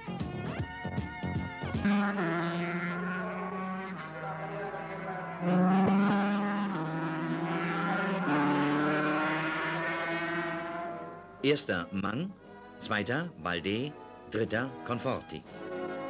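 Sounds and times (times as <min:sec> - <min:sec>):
racing motorcycle engines revving: 0:01.4 - 0:11.4.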